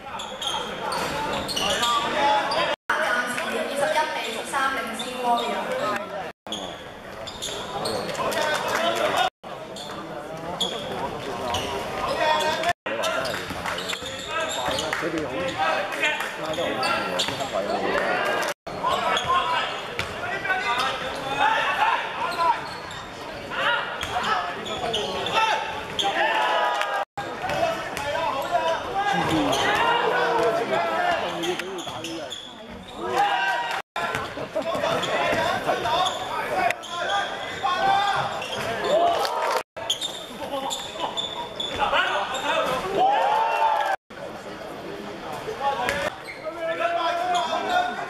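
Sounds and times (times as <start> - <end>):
people shouting: 25.4 - 27.0.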